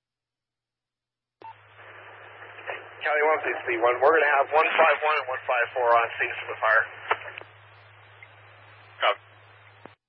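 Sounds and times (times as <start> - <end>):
radio transmission click: 1.4 - 8.4
radio scanner hiss: 1.4 - 10.0.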